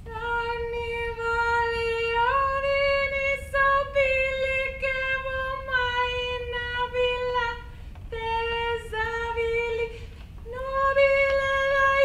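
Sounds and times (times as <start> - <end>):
woman singing wordless held notes: 0.0 - 12.0.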